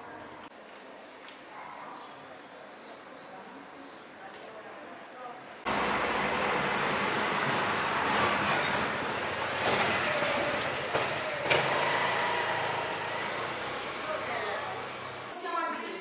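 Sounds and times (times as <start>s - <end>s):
traffic noise: 5.6s - 16.0s
indistinct voices: 5.7s - 16.0s.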